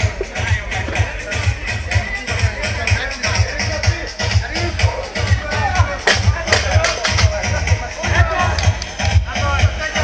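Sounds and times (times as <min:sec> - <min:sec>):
crowd chatter: 0:00.0 - 0:10.0
electronic dance music: 0:00.0 - 0:10.0.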